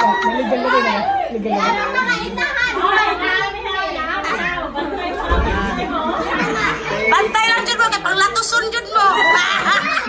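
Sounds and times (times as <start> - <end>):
party chatter: 0.0 - 10.0.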